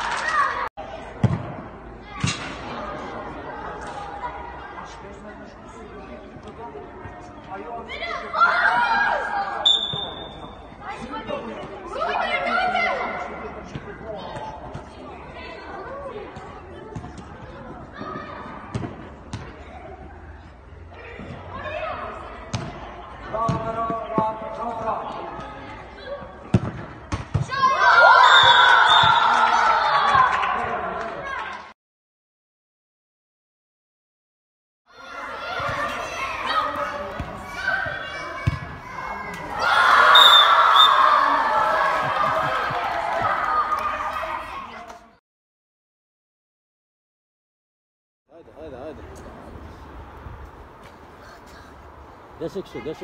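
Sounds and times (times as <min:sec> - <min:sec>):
people shouting: 0:35.0 - 0:44.6.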